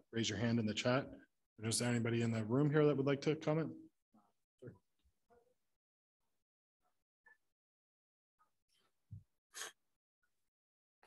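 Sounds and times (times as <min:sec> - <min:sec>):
breath into microphone: 0:08.8 - 0:09.8.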